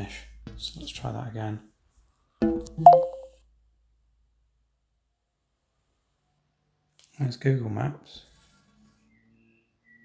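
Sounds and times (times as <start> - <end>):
phone electronic chime: 2.8 - 3.3.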